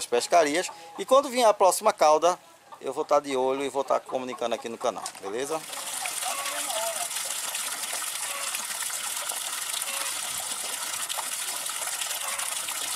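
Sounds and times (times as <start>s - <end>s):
water jet splashing into pond: 5.1s - 12.9s.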